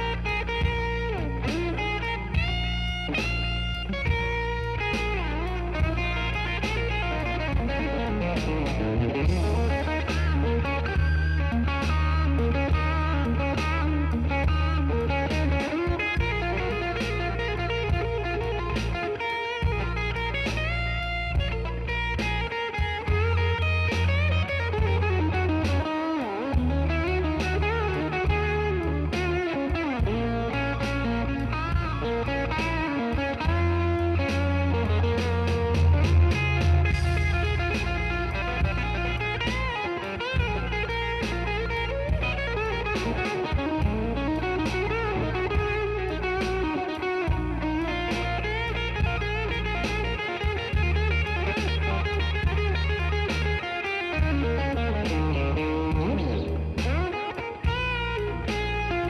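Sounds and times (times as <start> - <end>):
blues electric guitar solo: 0.0 - 59.0
steady bass line: 0.0 - 59.0.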